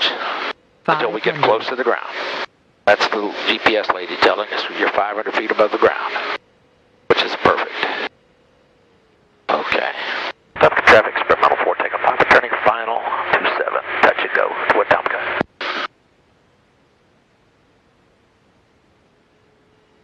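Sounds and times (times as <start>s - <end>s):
faint steady hum: 0.0s - 20.0s
speech over aircraft radio: 0.9s - 2.3s, 2.9s - 6.4s, 7.1s - 8.1s, 9.5s - 15.5s.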